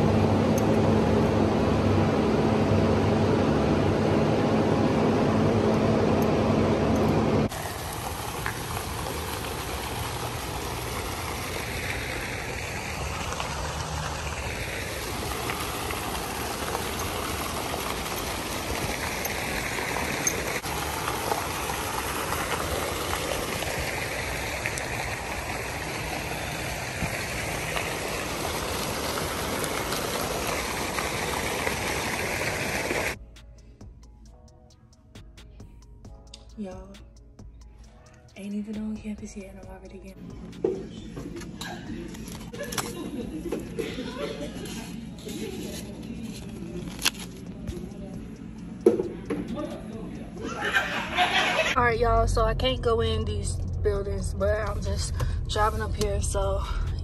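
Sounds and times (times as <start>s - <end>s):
steady mechanical hum: 0.0s - 35.0s, 36.1s - 57.0s
fountain jets splashing into pool: 7.5s - 33.2s.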